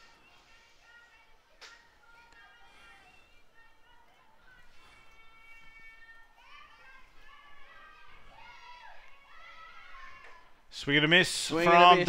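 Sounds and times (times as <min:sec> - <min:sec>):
girls calling out and chanting: 0:05.3 - 0:10.7.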